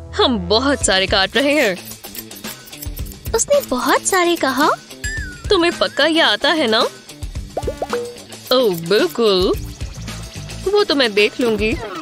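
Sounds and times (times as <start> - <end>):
background music: 0.0 - 12.0
held tone: 7.6 - 8.2
rising bloop sound effects: 7.6 - 8.2.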